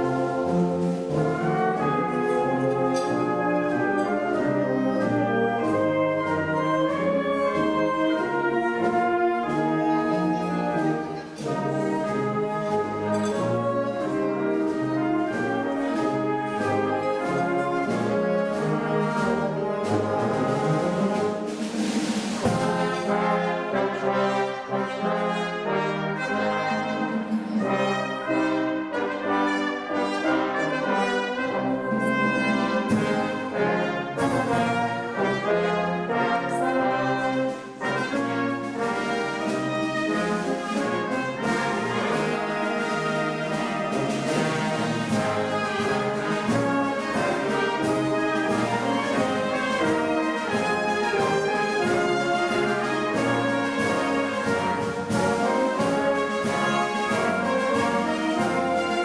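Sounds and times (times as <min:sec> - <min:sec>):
wind band playing a march: 0:00.0 - 0:59.0.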